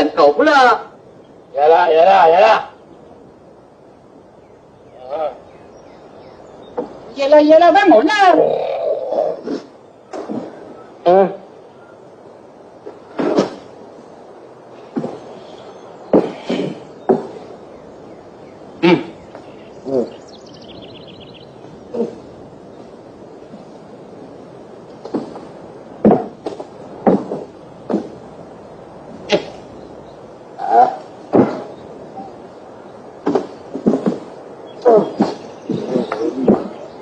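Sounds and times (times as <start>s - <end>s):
old film soundtrack hiss: 0.0s - 37.0s.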